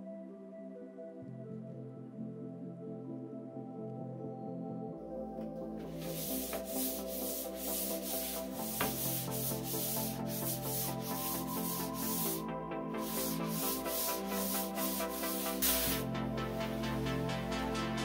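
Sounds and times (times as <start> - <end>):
hand sanding wood: 5.8 - 17.3.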